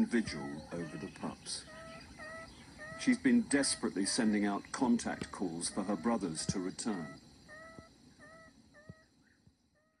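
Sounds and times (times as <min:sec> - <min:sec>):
meerkat chirps: 0:00.2 - 0:04.4, 0:05.1 - 0:09.1.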